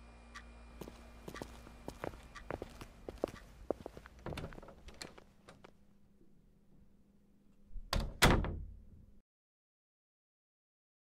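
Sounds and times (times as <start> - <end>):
faint steady hum: 0.0 - 8.0
door shutting with click and thud: 4.2 - 5.6, 7.9 - 8.8.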